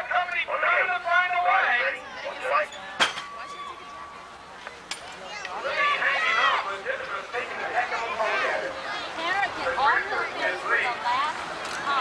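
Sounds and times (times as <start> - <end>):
metal gate clang: 2.9 - 3.4.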